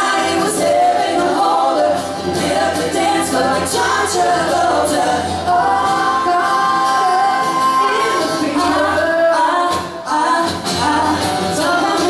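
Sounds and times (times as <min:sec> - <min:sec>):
acoustic guitar: 0:00.0 - 0:12.0
man singing: 0:00.0 - 0:12.0
woman singing: 0:00.0 - 0:12.0.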